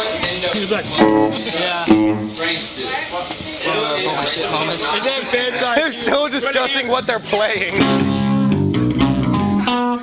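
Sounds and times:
electric guitar notes ringing: 0.9s - 2.6s, 7.8s - 10.0s.

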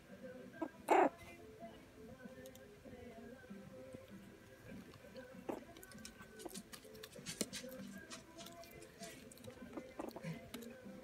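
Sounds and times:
puppy crying: 0.6s - 1.2s.

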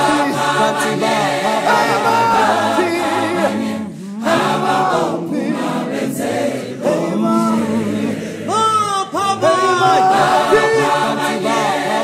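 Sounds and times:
choir singing gospel in harmony: 0.0s - 12.0s.

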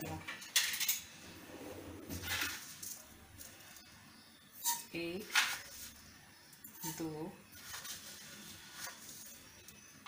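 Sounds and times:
spoon scooping sugar rustle: 6.8s - 9.6s.

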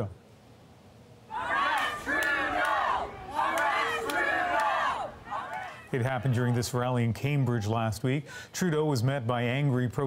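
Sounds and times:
crowd shouting angrily: 1.3s - 7.7s.

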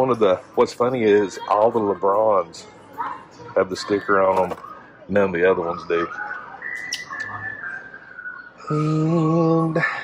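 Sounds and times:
high whistled tone: 5.6s - 9.2s.

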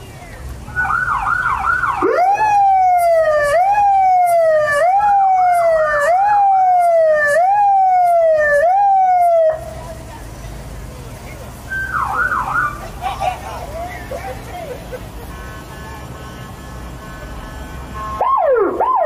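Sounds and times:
electronic siren warbling: 18.1s - 19.0s.

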